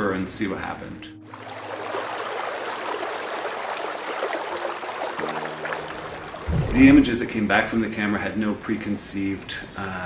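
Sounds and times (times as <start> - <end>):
river water rushing: 1.3 - 7.4.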